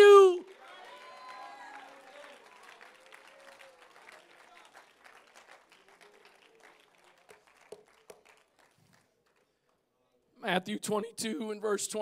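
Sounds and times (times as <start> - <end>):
congregation applauding: 0.0 - 9.8.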